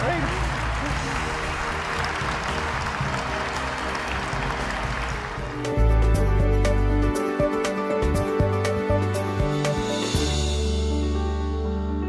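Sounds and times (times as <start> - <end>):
audience applauding: 0.0 - 6.1
stage play-off music: 0.0 - 12.0.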